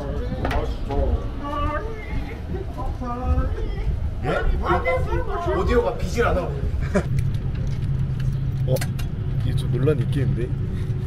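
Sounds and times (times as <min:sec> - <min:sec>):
aircraft cabin drone: 0:00.0 - 0:11.0.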